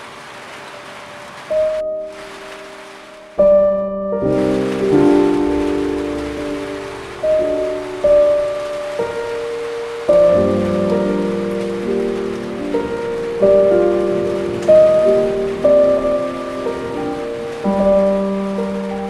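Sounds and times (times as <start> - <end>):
rain on hard surface: 0.0 - 19.0
slow piano chords: 0.0 - 19.0.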